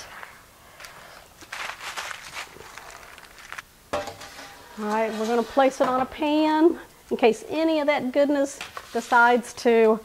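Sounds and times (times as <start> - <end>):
aluminium foil crinkling: 0.8 - 5.2.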